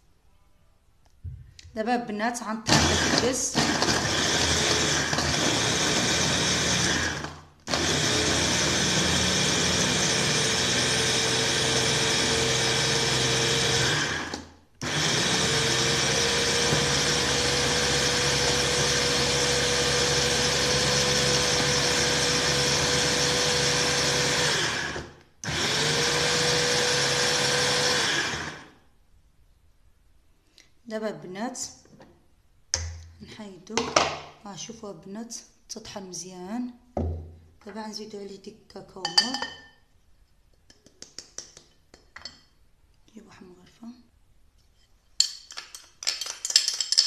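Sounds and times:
food chopper motor whining: 0:02.7 - 0:28.7.

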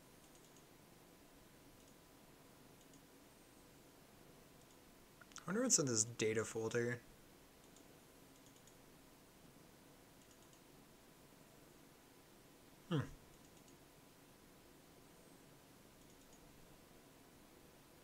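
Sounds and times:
computer mouse clicks: 0:00.2 - 0:00.7, 0:01.8 - 0:02.0, 0:02.8 - 0:03.1, 0:04.6 - 0:05.4, 0:07.6 - 0:08.8, 0:10.2 - 0:10.7, 0:13.3 - 0:13.8, 0:16.0 - 0:16.5.

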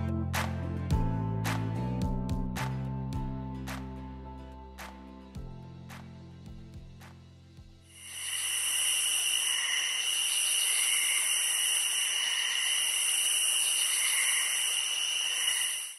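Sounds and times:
soft music: 0:00.0 - 0:08.0
shrill insect chorus: 0:08.0 - 0:15.9.

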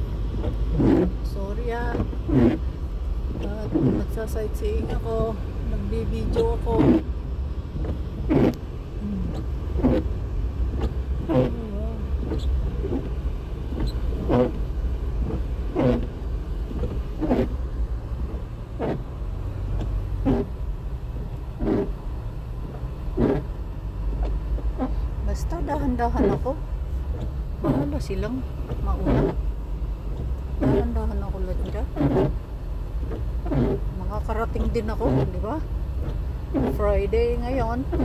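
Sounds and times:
low rumble of car driving: 0:00.0 - 0:38.0
windshield wipers rubbing: 0:00.0 - 0:38.0.

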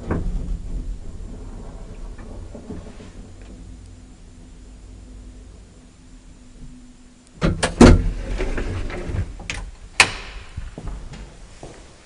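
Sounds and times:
elevator gate clanking: 0:00.0 - 0:04.5
sliding gate rattle: 0:00.0 - 0:04.5, 0:07.5 - 0:10.6
sharp latch click: 0:10.0 - 0:10.5.

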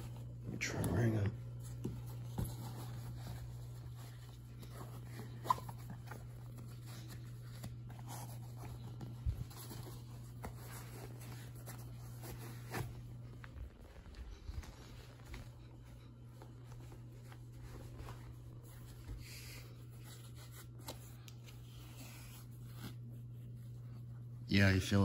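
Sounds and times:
shoe fabric and laces rustling: 0:00.0 - 0:24.3
steady low hum: 0:00.0 - 0:25.0.

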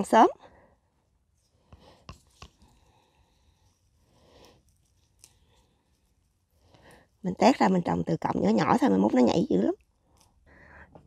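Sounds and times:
gloved hands rustling: 0:01.2 - 0:07.3.

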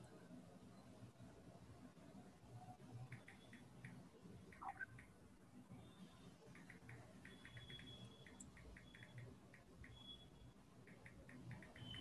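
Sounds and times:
soft short high ticks: 0:06.6 - 0:12.0.

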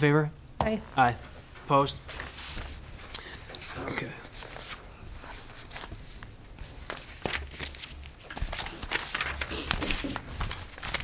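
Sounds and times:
paper rustling: 0:02.0 - 0:11.0.

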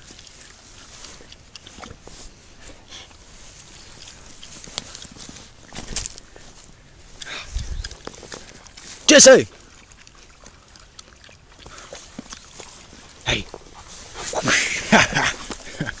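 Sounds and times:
footsteps crunching through snow: 0:00.0 - 0:09.6, 0:11.5 - 0:16.0.

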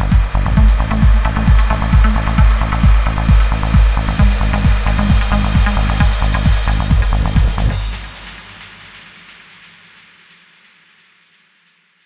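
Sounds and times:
reverb and delay tail: 0:00.0 - 0:08.6.

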